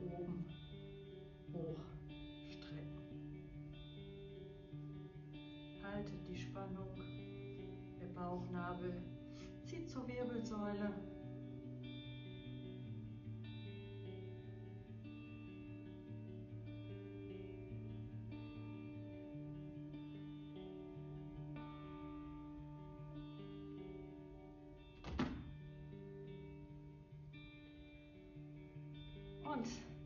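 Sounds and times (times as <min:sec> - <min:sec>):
plucked guitar music: 0:00.0 - 0:30.0
brief knock: 0:25.0 - 0:25.6.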